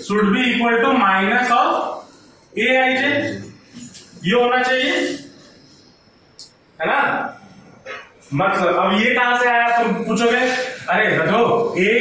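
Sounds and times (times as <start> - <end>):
man speaking: 0.0 - 3.6, 4.2 - 5.4, 6.8 - 7.5, 8.3 - 12.0.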